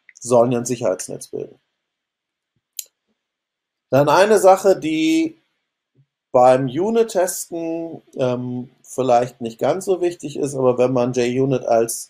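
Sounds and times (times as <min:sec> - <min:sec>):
man speaking: 0:00.1 - 0:01.5, 0:03.9 - 0:05.3, 0:06.4 - 0:12.0.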